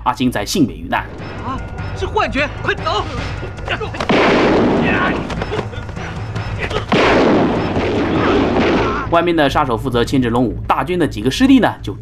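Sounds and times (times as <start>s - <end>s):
loud gunshot-like blast: 4.0s - 5.1s, 6.9s - 9.1s.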